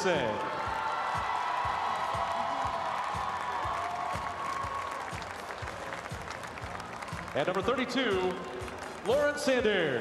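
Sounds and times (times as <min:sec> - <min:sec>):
crowd applauding: 0:00.0 - 0:10.0
music: 0:00.0 - 0:10.0.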